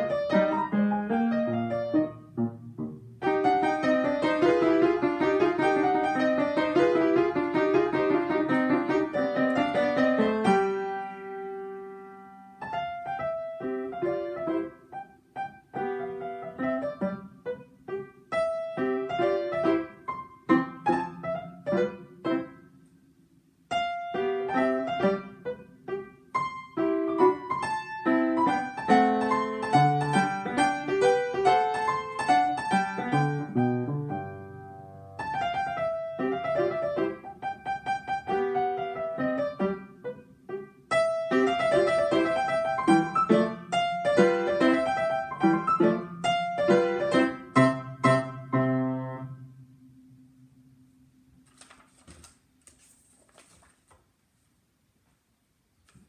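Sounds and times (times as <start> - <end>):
acoustic piano playing: 0.0 - 51.3.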